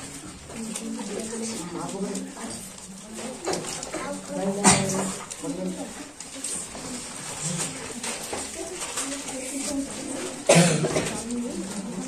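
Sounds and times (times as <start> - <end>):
voices talking quietly: 0.0 - 12.0
loud cough: 10.5 - 11.2.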